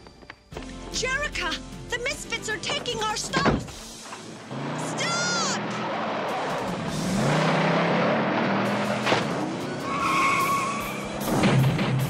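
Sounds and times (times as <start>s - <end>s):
tyres spinning and skidding: 2.5s - 12.0s
tyre squeal: 9.6s - 11.3s.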